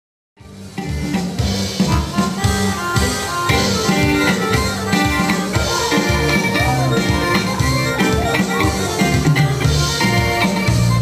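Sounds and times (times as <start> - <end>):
drum kit beat: 0.4 - 11.0
live band dance music: 0.4 - 11.0.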